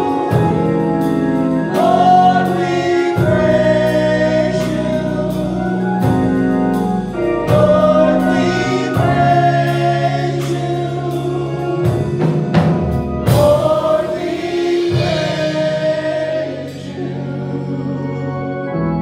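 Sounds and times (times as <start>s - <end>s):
low instrumental notes: 0.0s - 19.0s
women singing in harmony: 1.7s - 5.8s, 7.4s - 12.3s, 13.3s - 18.5s.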